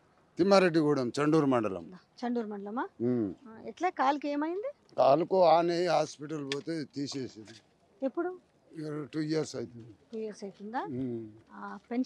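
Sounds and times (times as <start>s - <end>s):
man talking into a microphone: 0.4s - 1.8s, 5.0s - 7.6s, 8.8s - 10.0s, 10.9s - 11.4s.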